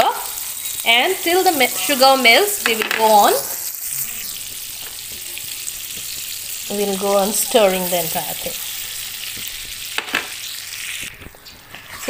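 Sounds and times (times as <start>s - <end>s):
butter sizzling in a pan: 0.0s - 12.0s.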